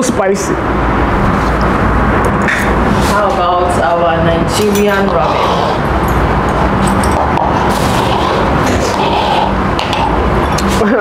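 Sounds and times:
machine low rumbling: 0.0s - 11.0s.

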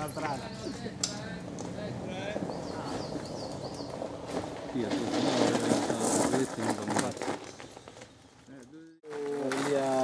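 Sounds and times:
high chirping bird calls: 2.4s - 4.0s.

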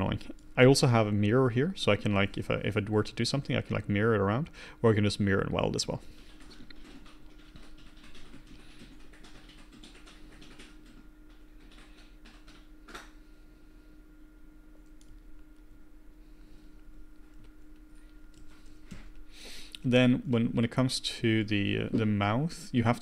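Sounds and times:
faint steady hum: 0.0s - 23.0s
keyboard keys clicking: 6.3s - 13.1s.

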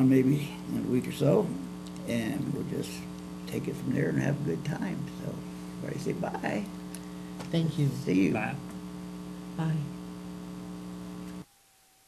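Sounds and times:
electrical mains hum: 0.0s - 12.0s
faint thin steady tone: 0.0s - 12.0s.

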